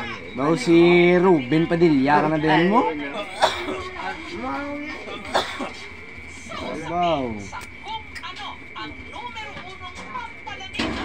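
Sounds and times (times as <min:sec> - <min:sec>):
voices in a room: 0:00.0 - 0:11.0
person coughing: 0:03.3 - 0:03.9, 0:05.2 - 0:05.8.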